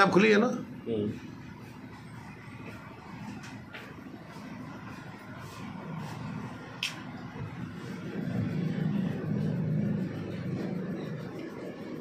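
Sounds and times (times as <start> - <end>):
steady low rumble: 1.3 - 12.0.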